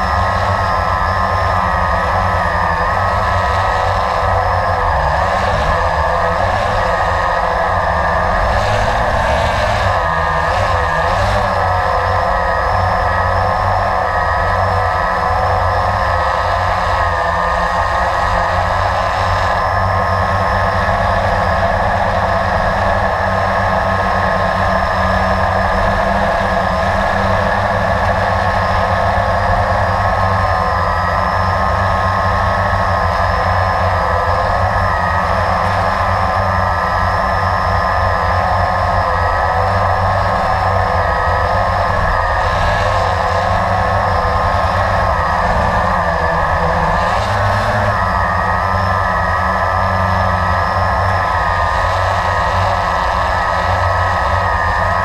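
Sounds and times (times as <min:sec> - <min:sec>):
quadcopter motors whining: 0:00.0 - 0:55.0.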